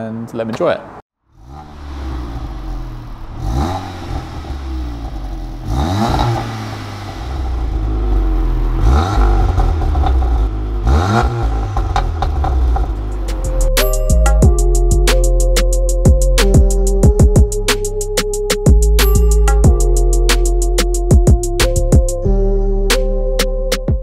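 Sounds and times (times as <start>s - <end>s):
car engine idling and revving: 1.2s - 22.2s.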